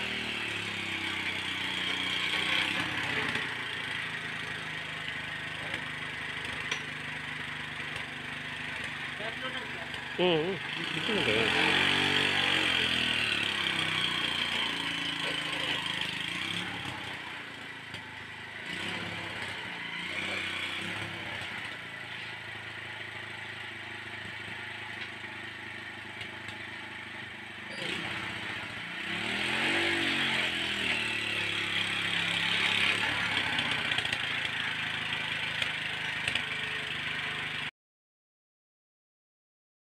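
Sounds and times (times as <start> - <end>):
small engine running and revving: 0.0 - 37.7.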